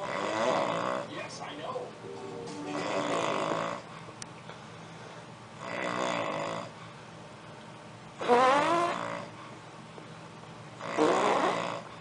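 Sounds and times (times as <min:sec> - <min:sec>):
man snoring: 0:00.0 - 0:01.1, 0:02.8 - 0:03.9, 0:05.6 - 0:06.8, 0:10.8 - 0:11.9.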